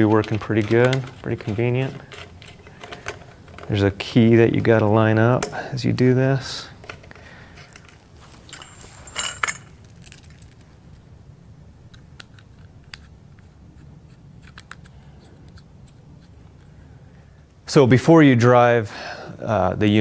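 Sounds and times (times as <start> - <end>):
metal fitting clicks and clinks: 7.6 - 11.0
metallic jingle: 7.8 - 11.1.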